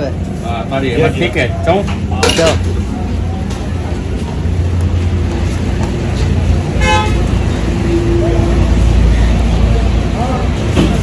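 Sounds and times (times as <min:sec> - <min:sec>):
road traffic rumble: 0:00.0 - 0:11.0
vehicle horn toot: 0:06.8 - 0:07.3.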